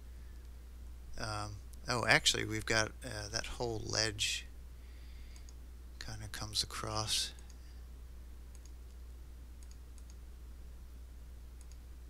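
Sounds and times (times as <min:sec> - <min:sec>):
low electrical hum: 0:00.0 - 0:12.0
computer mouse clicks: 0:05.3 - 0:05.6, 0:08.5 - 0:10.2, 0:11.6 - 0:11.9.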